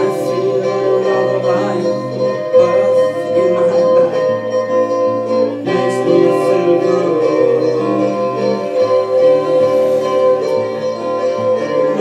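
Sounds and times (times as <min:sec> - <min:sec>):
solo guitar: 0:00.0 - 0:12.0.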